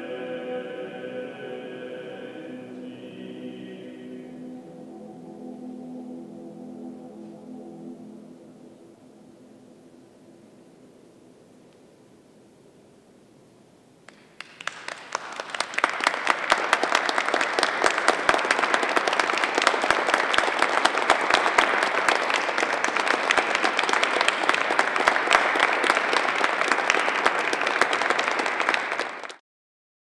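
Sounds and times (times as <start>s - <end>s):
audience applauding: 14.1s - 29.4s.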